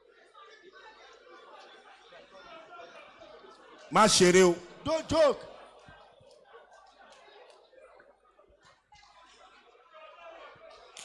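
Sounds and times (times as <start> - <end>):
congregation murmuring: 3.9 - 5.8.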